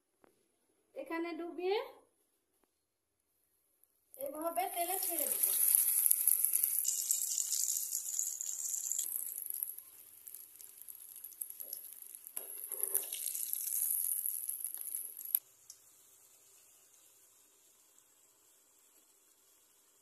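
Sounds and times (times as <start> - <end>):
food sizzling in hot oil: 4.2 - 20.0.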